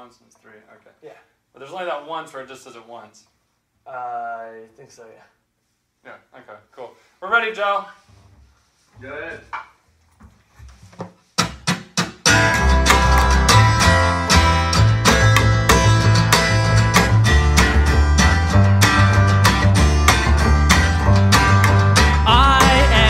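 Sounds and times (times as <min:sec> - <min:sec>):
band playing guitar bass and drums: 0:11.9 - 0:23.0
person singing: 0:21.9 - 0:23.0.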